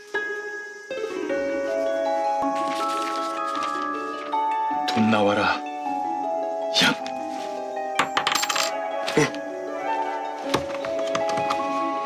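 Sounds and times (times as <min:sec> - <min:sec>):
background music with sustained tones: 0:00.0 - 0:12.0
coin dropping onto wooden table: 0:08.0 - 0:08.8.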